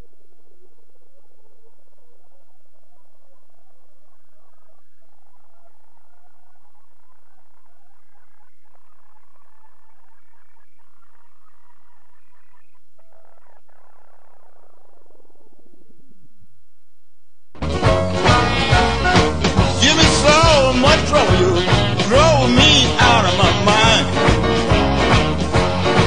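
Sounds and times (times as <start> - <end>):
sped-up garbled music: 17.6 - 26.0.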